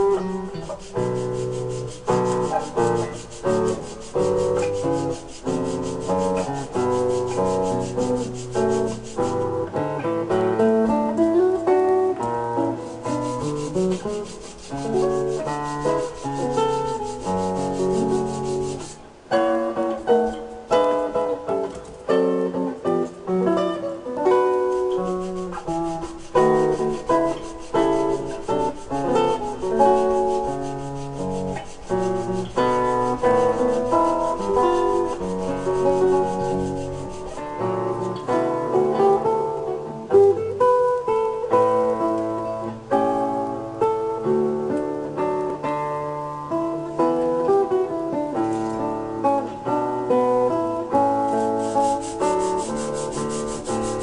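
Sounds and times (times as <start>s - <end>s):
sanding wood by hand: 0.0s - 9.5s, 12.7s - 19.0s, 24.4s - 37.6s, 51.3s - 54.0s.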